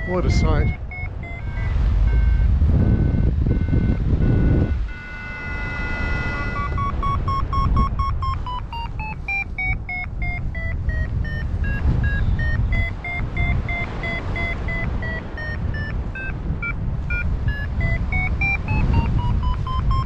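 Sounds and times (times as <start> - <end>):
variometer beeping: 0.0 - 20.0
wind noise: 0.0 - 20.0.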